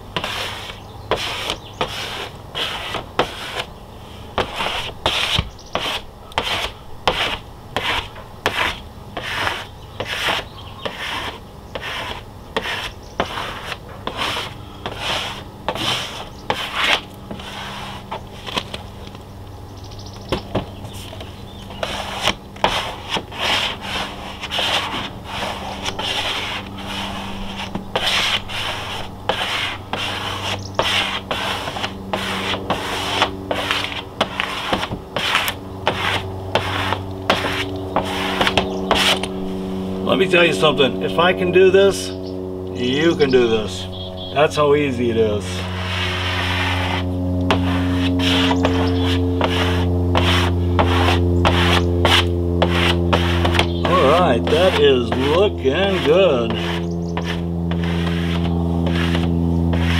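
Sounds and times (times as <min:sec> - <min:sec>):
squeegee rubbing over wet vinyl: 0:00.2 - 0:03.7, 0:04.3 - 0:18.9, 0:20.5 - 0:41.3, 0:45.0 - 0:59.9.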